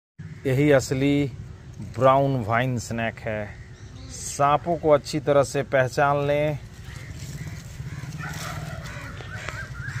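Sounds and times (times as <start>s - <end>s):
wavering bird calls: 0.2s - 5.2s, 6.1s - 10.0s.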